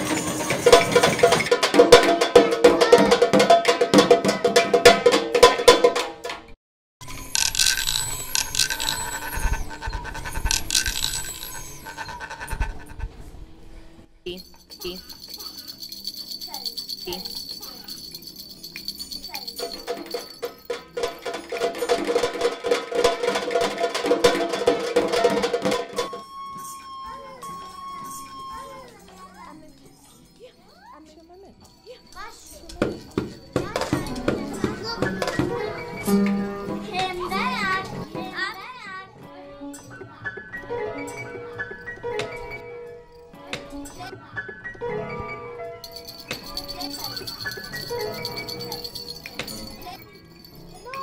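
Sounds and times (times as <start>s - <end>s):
small objects scraping and rattling: 7.0s - 13.2s.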